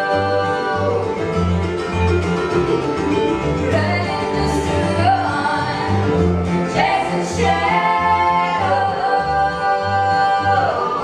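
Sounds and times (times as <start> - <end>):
acoustic strings: 0.0 - 11.0
upright bass pulsing: 0.0 - 11.0.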